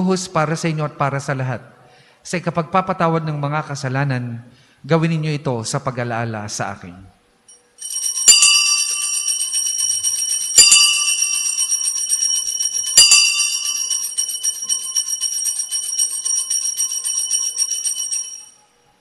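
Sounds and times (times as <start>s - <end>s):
altar bells jingling: 7.5s - 18.7s.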